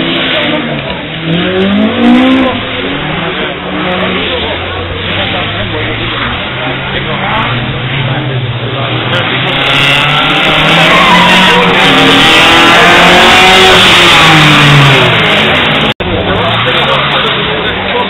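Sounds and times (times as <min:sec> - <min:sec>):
car engines revving hard: 0:00.0 - 0:18.0.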